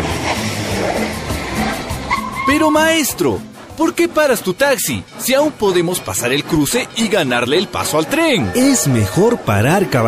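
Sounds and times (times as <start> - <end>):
car pulling to a stop: 0.0 - 2.7
background music: 0.0 - 10.0.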